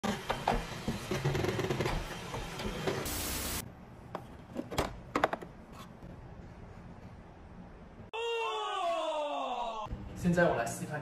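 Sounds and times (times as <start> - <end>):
loud hiss: 3.1 - 3.6.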